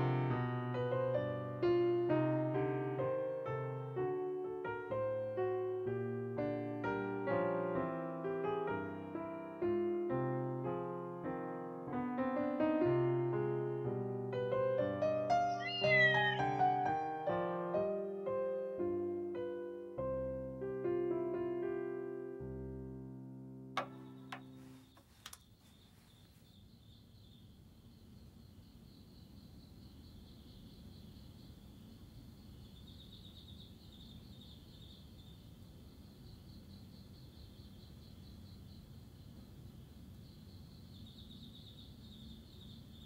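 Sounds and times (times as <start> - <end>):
piano notes: 0.0 - 24.8
insects chirping: 15.3 - 18.0, 23.8 - 43.0.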